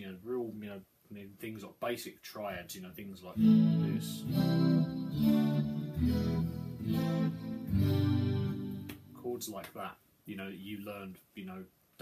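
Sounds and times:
clean electric guitar chords: 3.4s - 9.2s.

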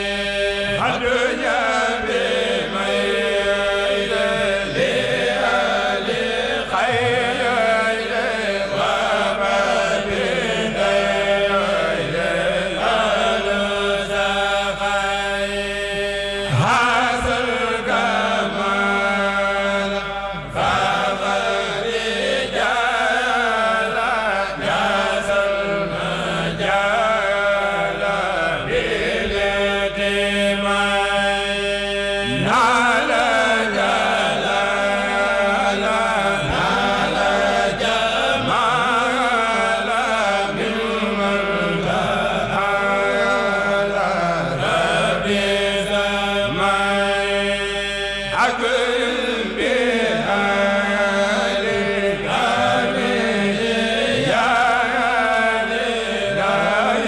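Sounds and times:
men chanting into microphones: 0.0s - 57.0s.

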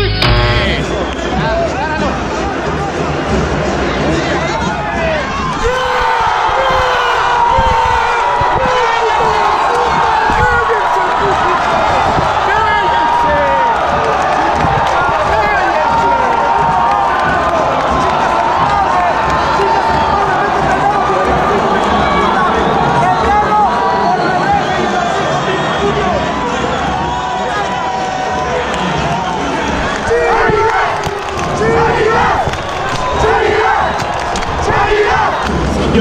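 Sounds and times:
stadium crowd shouting and chanting: 0.0s - 36.0s.

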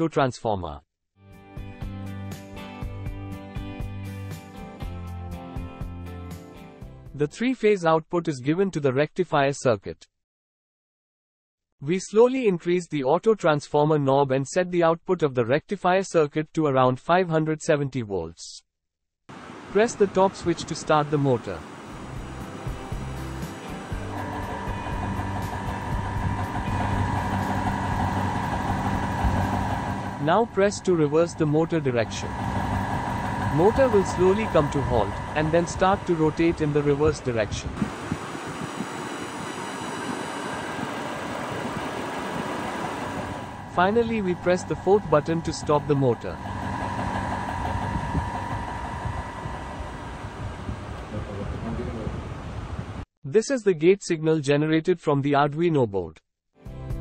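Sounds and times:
electric motor hum and whine: 21.6s - 51.6s.

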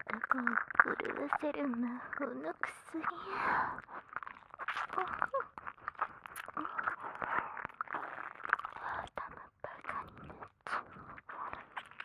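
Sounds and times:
woman whispering: 0.0s - 3.9s, 8.7s - 12.0s.

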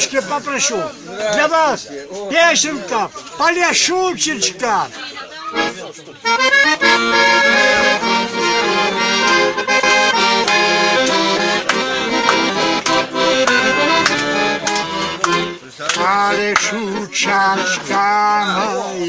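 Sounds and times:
button accordion playing: 5.5s - 19.0s.

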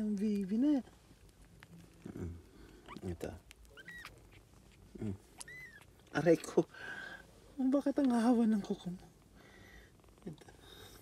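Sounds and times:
soft low rustle: 0.0s - 11.0s
kitten mewing: 3.6s - 6.1s.

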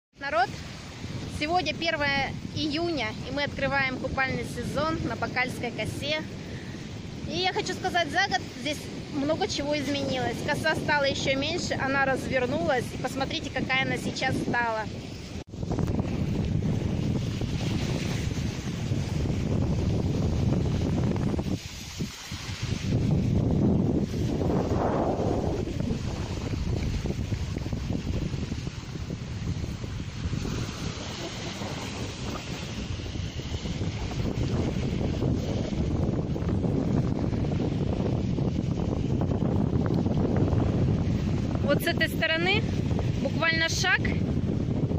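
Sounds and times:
small waves washing onto beach: 0.2s - 44.9s
wind buffeting microphone: 0.2s - 44.9s.

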